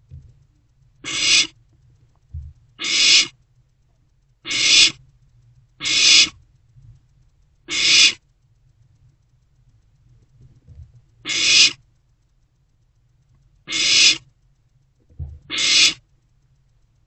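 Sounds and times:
owl chicks hissing: 1.0 - 1.6, 2.8 - 3.4, 4.4 - 5.0, 5.8 - 6.4, 7.7 - 8.2, 11.2 - 11.8, 13.7 - 14.3, 15.5 - 16.0.

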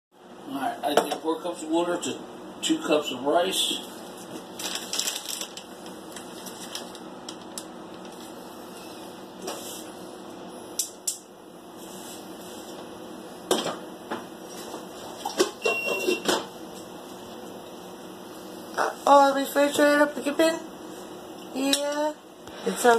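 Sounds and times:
steady low hum: 0.2 - 22.9.

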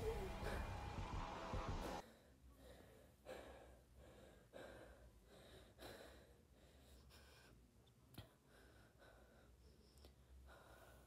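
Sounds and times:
loud sound cutting off: 0.0 - 2.0
person breathing quickly: 0.0 - 11.0.

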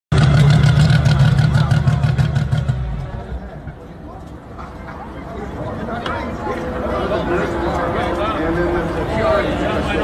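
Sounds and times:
race car engine running: 0.1 - 3.6.

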